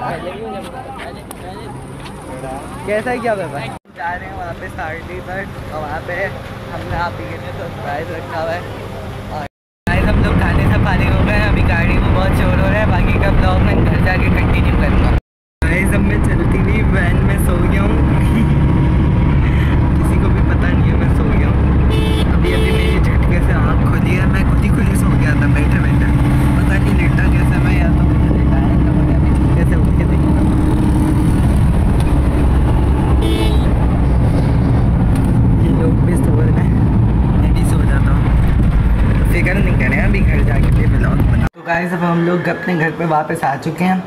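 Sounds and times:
engine and road rumble: 0.0s - 41.6s
short horn toots: 21.9s - 23.0s, 33.2s - 33.8s.

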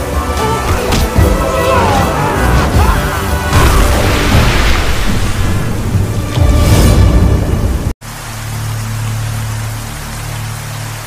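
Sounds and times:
rain hiss: 2.0s - 11.0s.

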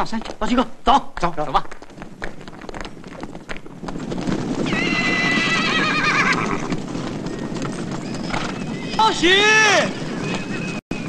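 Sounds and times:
horse hooves galloping: 0.0s - 11.0s
horse whinnying: 4.4s - 10.8s.

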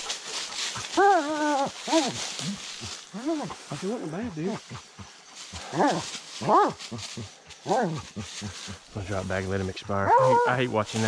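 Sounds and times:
dog baying: 0.6s - 8.8s, 9.8s - 10.8s.

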